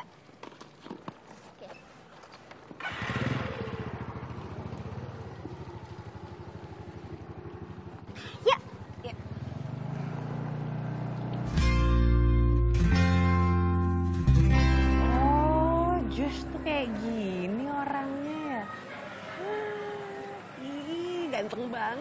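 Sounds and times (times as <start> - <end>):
motor scooter engine running: 2.7 - 11.8
music: 11.5 - 17.0.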